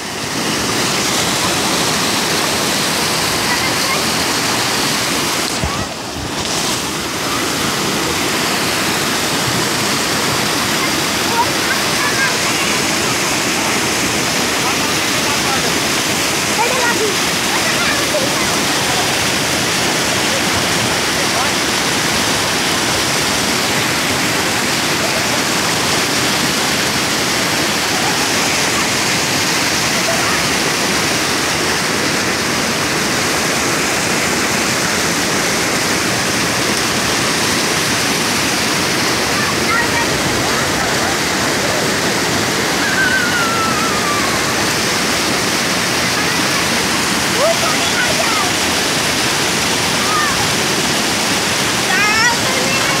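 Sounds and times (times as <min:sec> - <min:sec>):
floodwater rushing: 0:00.0 - 0:53.0.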